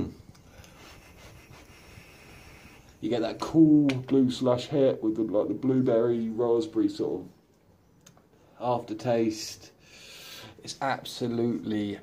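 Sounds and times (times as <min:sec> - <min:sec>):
faint airflow hiss of e-cigarette: 0:00.3 - 0:03.0.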